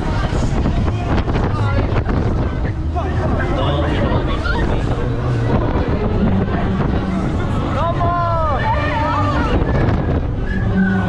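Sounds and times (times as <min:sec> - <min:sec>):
riders' voices and shouts: 0:00.0 - 0:11.0
wind buffeting microphone: 0:00.0 - 0:11.0.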